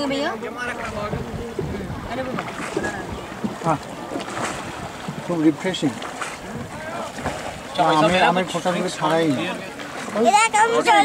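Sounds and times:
water lapping: 0:00.0 - 0:11.0
wind: 0:00.0 - 0:11.0.

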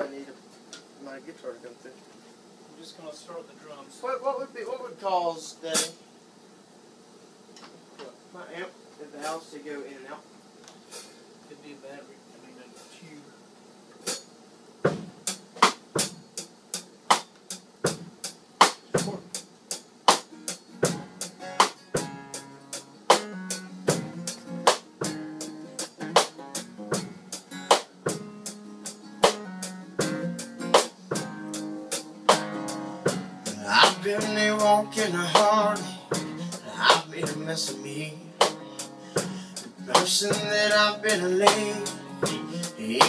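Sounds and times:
drum kit playing a beat: 0:05.6 - 0:06.0, 0:10.8 - 0:11.2, 0:13.9 - 0:43.0
acoustic guitar chords: 0:20.1 - 0:43.0.

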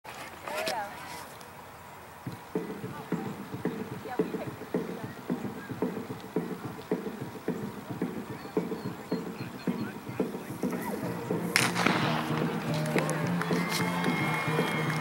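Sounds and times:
dull hollow knocks: 0:02.3 - 0:13.1.

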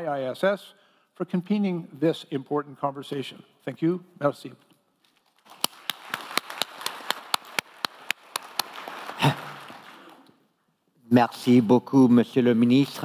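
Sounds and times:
audience applauding: 0:05.4 - 0:10.4
sharp close hand claps: 0:05.5 - 0:10.4.

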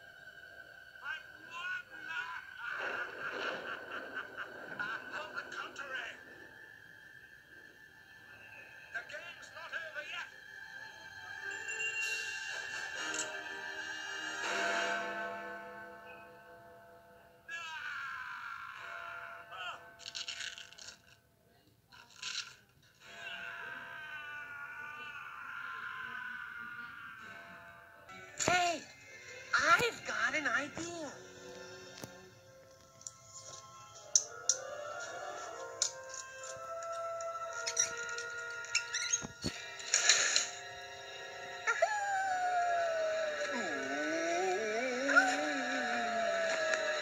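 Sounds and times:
cartoon character wavering cry: 0:41.7 - 0:47.0.

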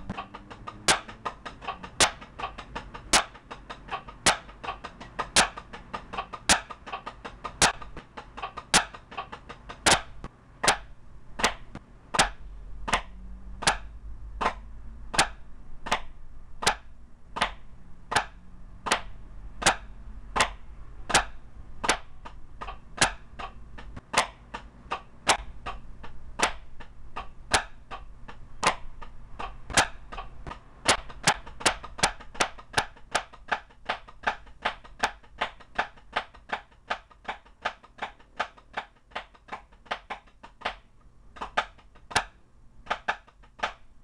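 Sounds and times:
drumsticks striking practice pad: 0:00.0 - 0:44.0.

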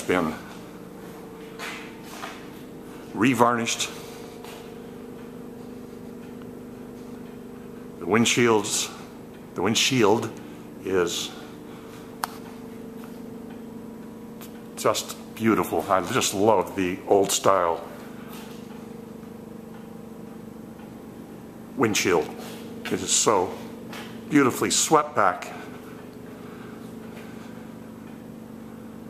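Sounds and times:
electrical hum: 0:00.0 - 0:29.0.

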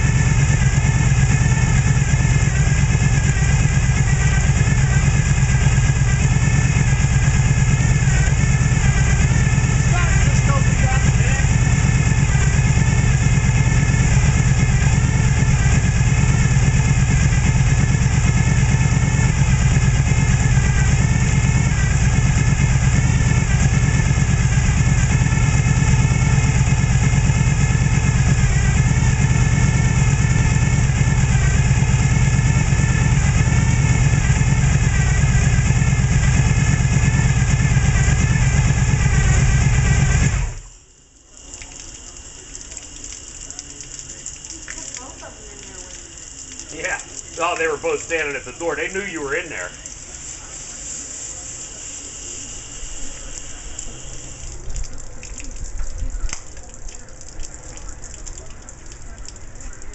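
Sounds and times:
unmuffled engine running: 0:00.0 - 0:40.9, 0:41.5 - 0:59.9.

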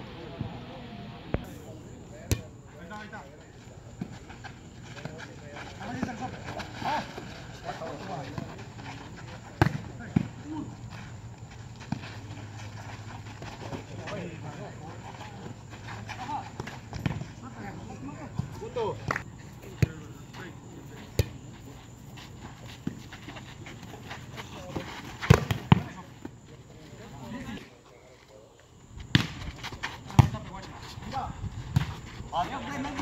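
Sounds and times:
players calling out: 0:01.4 - 0:27.6.

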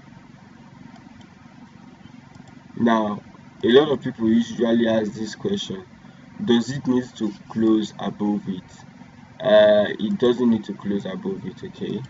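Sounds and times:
low background hum and rumble: 0:00.0 - 0:12.0.

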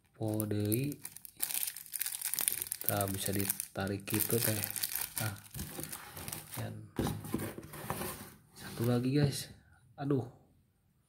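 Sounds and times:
person speaking: 0:00.1 - 0:01.7, 0:02.4 - 0:07.2, 0:08.6 - 0:10.4
plastic packaging rustling: 0:00.2 - 0:08.9
cardboard box rustling and scraping: 0:05.6 - 0:09.0.

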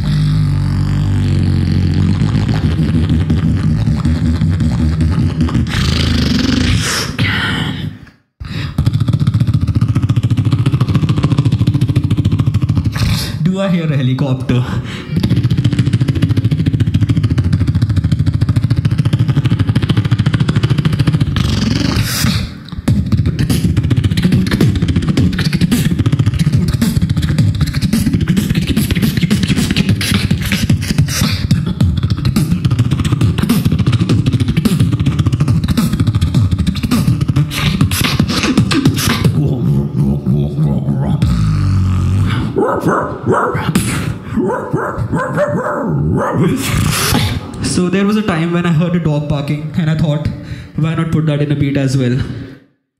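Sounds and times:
beatboxer imitating helicopter: 0:00.0 - 0:52.4.

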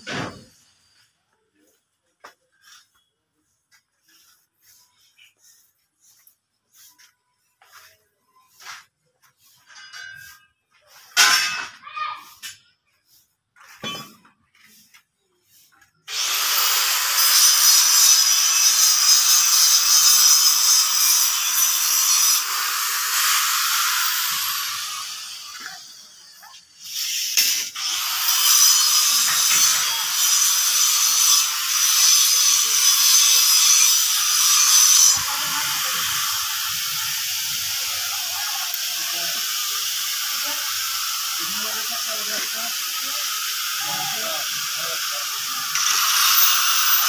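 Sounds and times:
power tool hissing: 0:16.1 - 0:47.0.

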